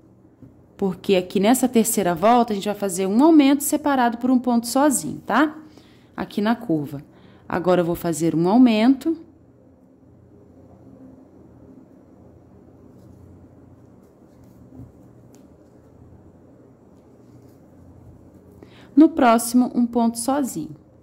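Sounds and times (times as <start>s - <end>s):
yarn rustling with crochet hook: 12.8s - 18.6s.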